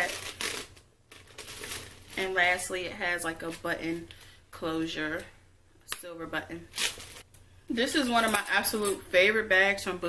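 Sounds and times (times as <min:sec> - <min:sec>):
bag rustling and crinkling: 0:00.0 - 0:02.7, 0:06.7 - 0:07.3.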